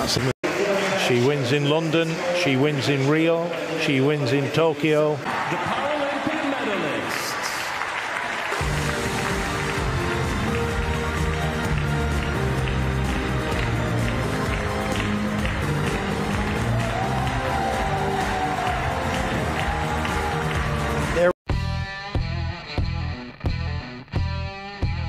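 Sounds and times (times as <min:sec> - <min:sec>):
crowd applauding: 0:00.0 - 0:21.4
music with long held chords: 0:08.6 - 0:25.0.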